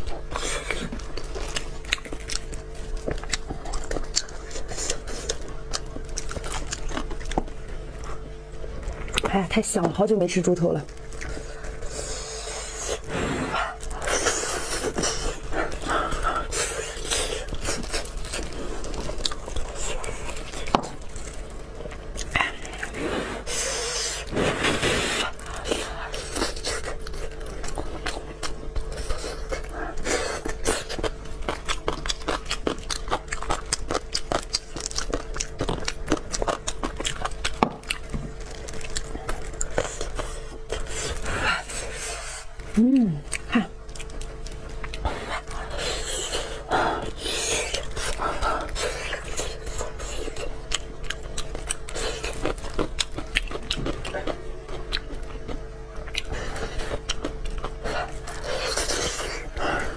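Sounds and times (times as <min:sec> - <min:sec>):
chewing and smacking: 0:00.0 - 0:59.9.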